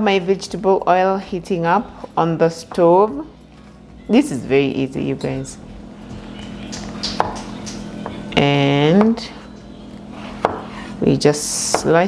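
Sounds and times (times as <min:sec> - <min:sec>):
faint steady hum: 0:00.0 - 0:12.0
knife knocking on cutting board: 0:10.4 - 0:10.7.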